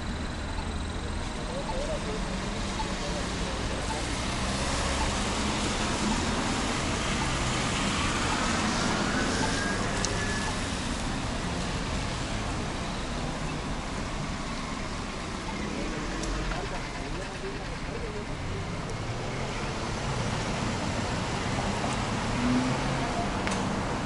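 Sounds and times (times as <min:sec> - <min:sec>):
traffic on wet pavement: 0:00.0 - 0:24.0.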